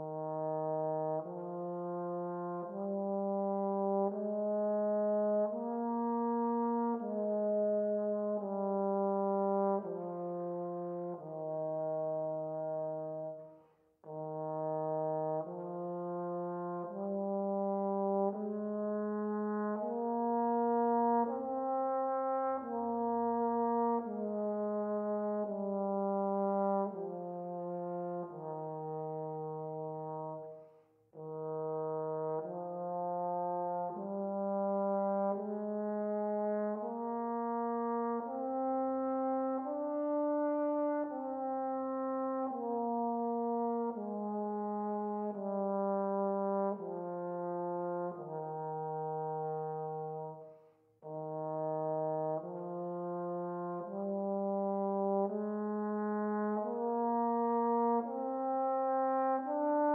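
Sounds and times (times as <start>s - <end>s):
trombone playing slow legato notes: 0.0s - 30.6s, 31.2s - 59.9s.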